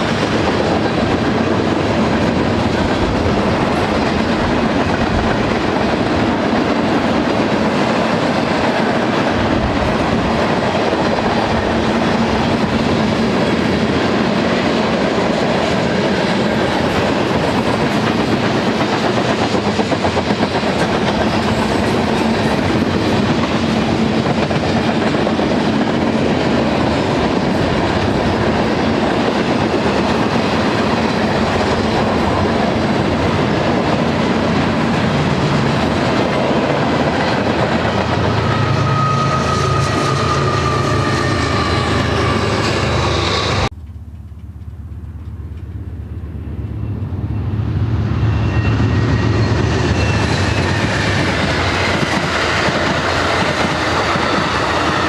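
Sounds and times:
steel wheels rolling on rail: 0.0 - 55.0
diesel locomotive rumble: 15.6 - 55.0.

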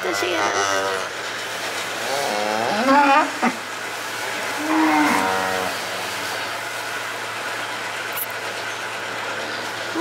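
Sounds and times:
calf mooing: 0.1 - 1.1, 2.1 - 3.6, 4.6 - 5.8.

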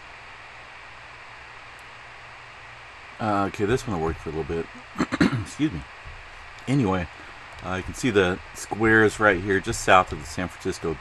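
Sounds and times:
faint low hum: 0.0 - 11.0
microphone hiss: 0.0 - 11.0.

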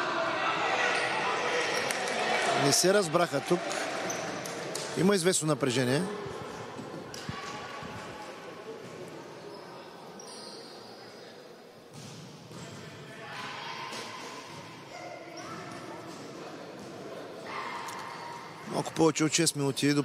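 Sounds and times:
voices and shouts in hall: 0.0 - 11.6, 12.7 - 20.0.

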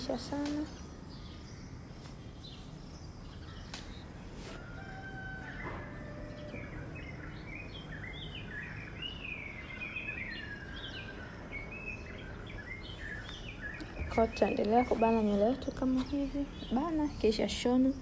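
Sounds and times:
birds chirping and whistling: 0.0 - 18.0
low background noise: 0.0 - 18.0.

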